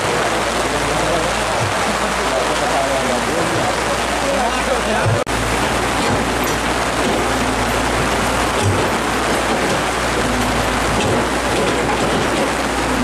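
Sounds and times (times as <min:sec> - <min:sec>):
heavy rain pouring: 0:00.0 - 0:13.0
low steady hum: 0:05.2 - 0:13.0.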